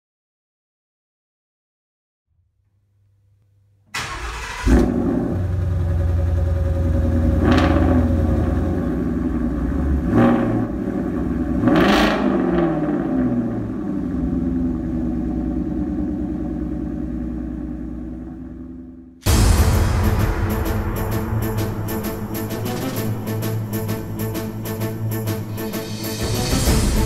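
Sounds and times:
car engine starting and revving: 0:03.9 - 0:27.0.

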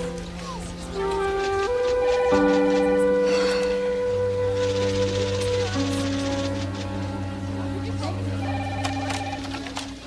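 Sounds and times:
low sustained music chords: 0:00.0 - 0:10.0
telephone ringing: 0:08.4 - 0:10.0.

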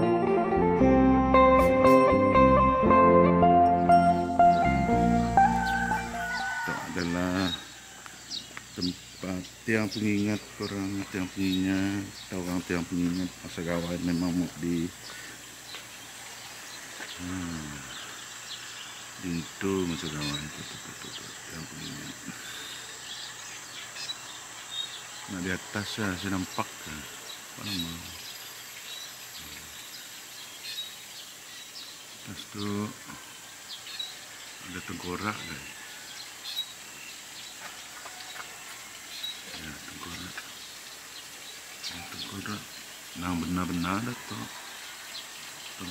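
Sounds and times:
background hiss: 0:03.4 - 0:45.9
bird chirp: 0:03.5 - 0:45.9.

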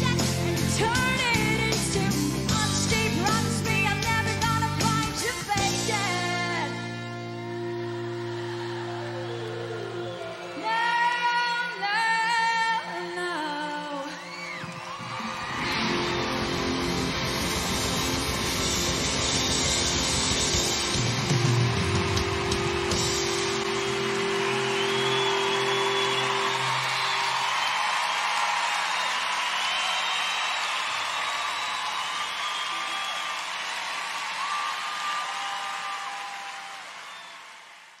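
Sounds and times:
crowd cheering and whistling: 0:06.2 - 0:13.0, 0:13.7 - 0:38.0.

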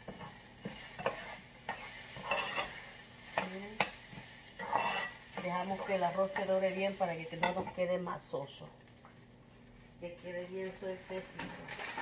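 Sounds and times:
spoon scraping a pan: 0:00.0 - 0:07.9
rice sizzling in oil: 0:00.0 - 0:12.0.

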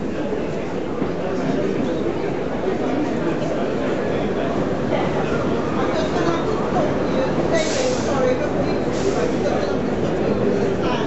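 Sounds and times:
crowd chatter: 0:00.0 - 0:11.0
train hiss: 0:07.5 - 0:09.5.

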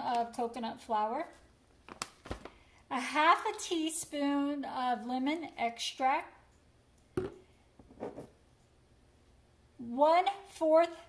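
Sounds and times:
bottle knocking on countertop: 0:07.2 - 0:08.3.

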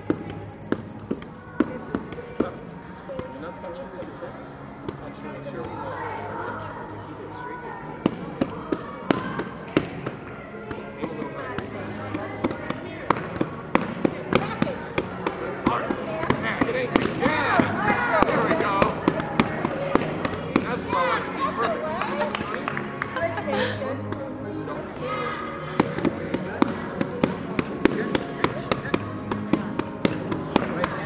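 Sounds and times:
children chattering: 0:04.5 - 0:31.0.

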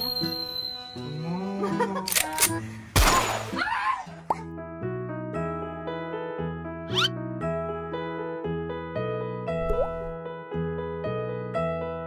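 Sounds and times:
cheerful background music: 0:00.0 - 0:12.0.

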